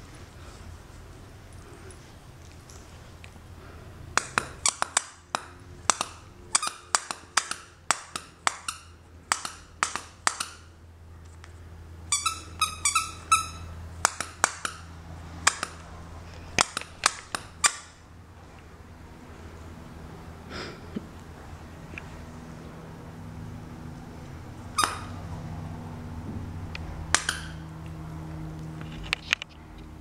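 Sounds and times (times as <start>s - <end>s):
faint low hum: 0.0s - 30.0s
dog toy squeaking: 4.6s - 5.2s, 5.9s - 10.7s, 12.1s - 15.8s, 24.7s - 25.3s, 27.1s - 27.7s.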